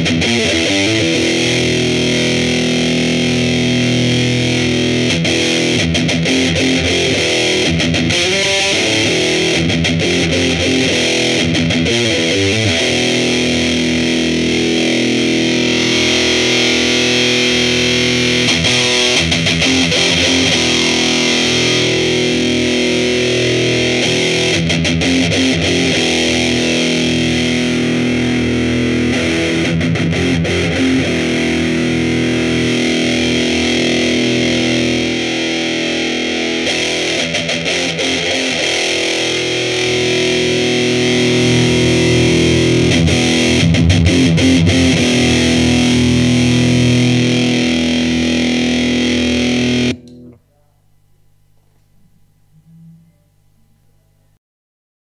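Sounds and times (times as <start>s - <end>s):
distorted electric guitar chords: 0.0s - 54.3s.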